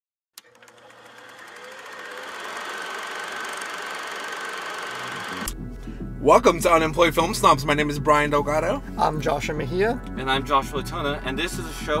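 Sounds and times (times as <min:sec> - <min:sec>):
film projector clattering: 0:00.4 - 0:05.5
music with low bass tone: 0:05.5 - 0:12.0.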